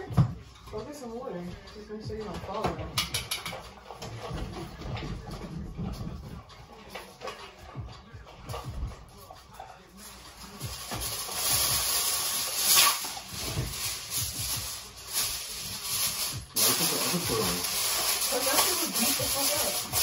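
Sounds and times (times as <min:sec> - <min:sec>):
aluminum foil crinkling: 0:09.9 - 0:20.0.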